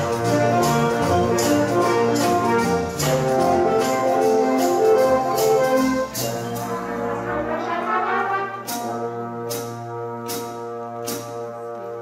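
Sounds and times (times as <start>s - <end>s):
jazz band playing: 0.0s - 12.0s.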